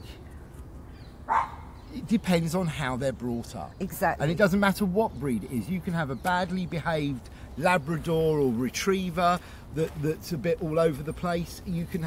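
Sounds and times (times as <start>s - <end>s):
faint outdoor background noise: 0.0s - 12.0s
dog bark: 1.3s - 1.7s.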